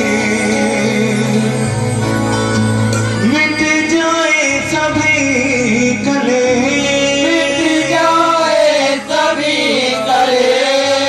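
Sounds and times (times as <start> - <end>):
devotional chanting: 0.0 - 1.8, 3.2 - 11.0
instrumental accompaniment: 0.0 - 11.0.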